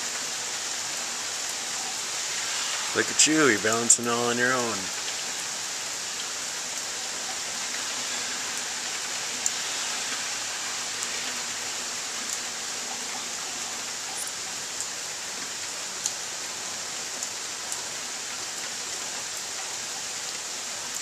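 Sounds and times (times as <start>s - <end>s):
faint ticks of raindrops: 0.0s - 21.0s
steady rain falling: 0.0s - 21.0s.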